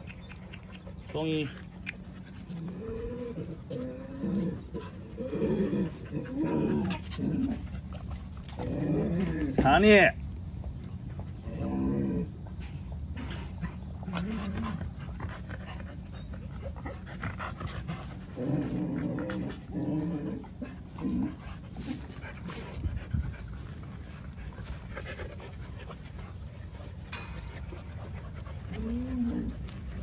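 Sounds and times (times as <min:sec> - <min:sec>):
dogs grumbling: 0:00.0 - 0:09.8, 0:11.0 - 0:30.0.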